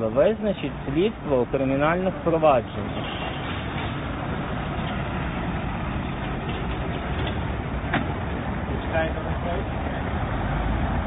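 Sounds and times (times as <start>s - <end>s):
bus running close by: 0.0s - 11.0s
street traffic noise: 0.0s - 11.0s.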